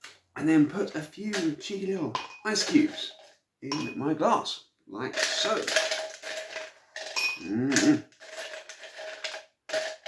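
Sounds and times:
ice cubes clinking in metal bucket: 1.2s - 4.2s, 5.0s - 10.0s.

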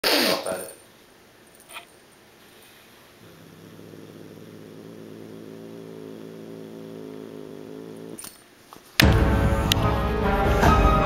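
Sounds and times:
cat growling: 3.1s - 8.2s.

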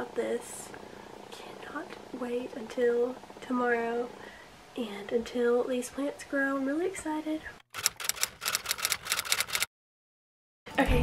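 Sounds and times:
typewriter keystroke clicks: 7.8s - 9.7s.

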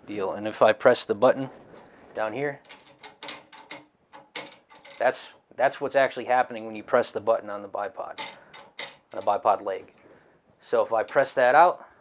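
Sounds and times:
light clicks and rattles: 2.6s - 5.3s, 8.2s - 9.5s.

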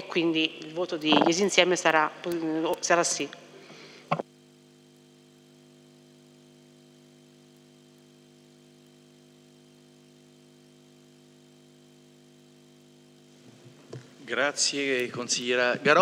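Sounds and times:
electrical hum: 0.0s - 16.0s.

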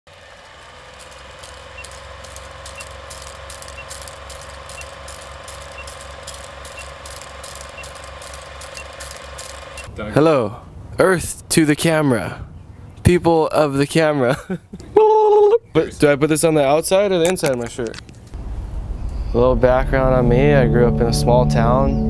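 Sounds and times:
film projector clattering: 0.1s - 9.9s
low hum: 0.1s - 10.0s, 18.3s - 22.0s
short faint beeps: 2.7s - 4.1s, 4.7s - 9.1s.

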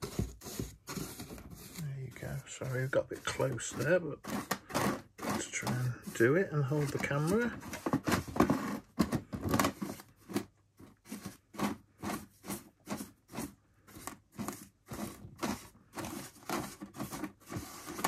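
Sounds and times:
small brush scrubbing plastic: 0.0s - 9.0s, 9.7s - 18.0s.

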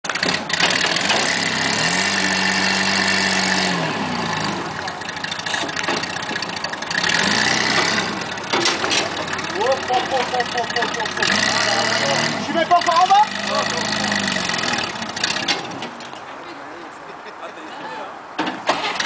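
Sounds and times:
buggy engine revving: 0.0s - 16.2s, 18.5s - 19.0s.

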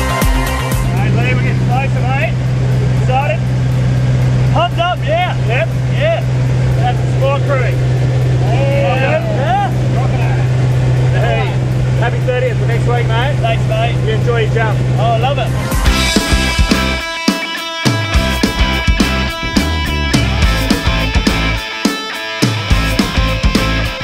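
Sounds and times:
light aircraft engine drone: 0.7s - 17.2s
people talking: 0.9s - 3.5s, 4.4s - 7.8s, 8.4s - 16.2s.

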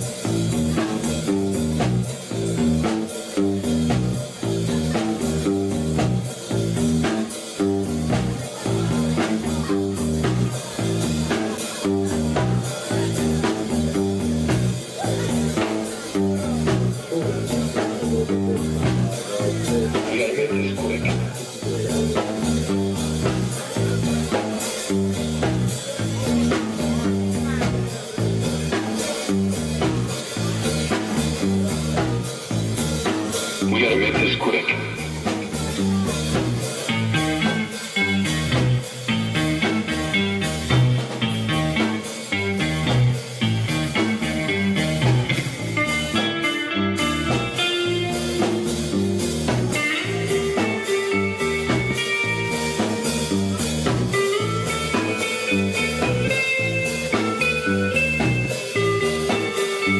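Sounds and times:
live rock band playing: 0.0s - 59.9s
quick electric guitar line: 0.0s - 59.9s.

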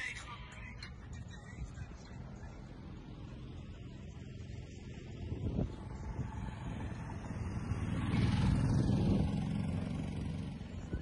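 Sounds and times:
road vehicle passing: 0.0s - 11.0s.

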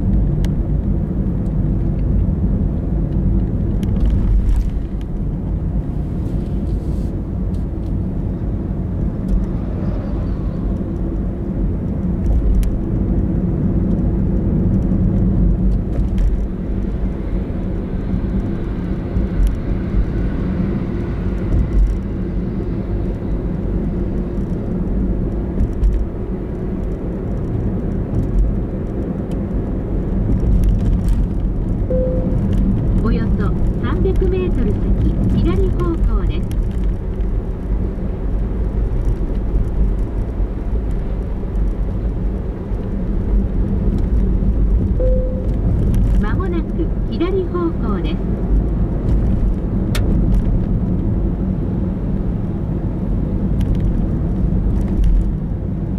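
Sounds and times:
car engine and tyre rumble: 0.0s - 55.9s.

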